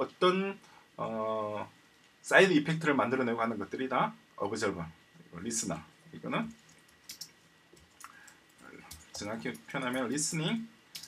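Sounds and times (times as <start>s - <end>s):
computer keyboard keystrokes: 7.1s - 10.2s.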